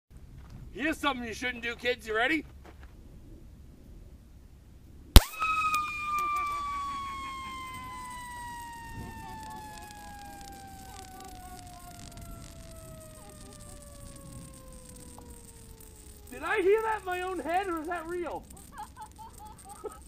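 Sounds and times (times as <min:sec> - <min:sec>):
gas cartridge whistling: 0:05.2 - 0:20.0.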